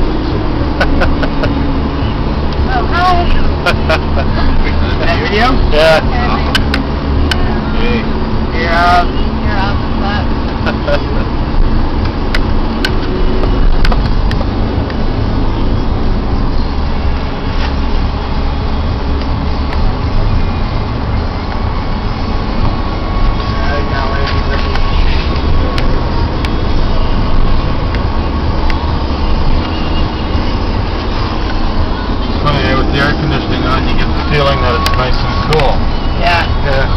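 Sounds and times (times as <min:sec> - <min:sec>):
vehicle engine and tyres rumble: 0:00.0 - 0:36.9.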